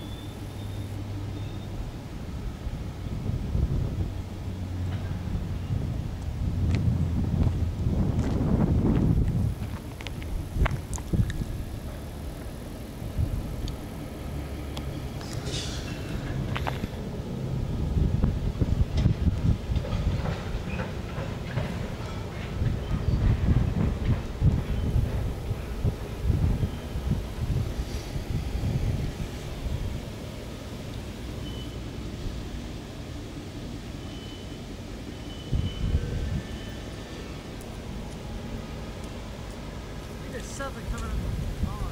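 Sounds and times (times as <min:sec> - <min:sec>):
train wheels rumbling and clacking: 0:00.0 - 0:41.9.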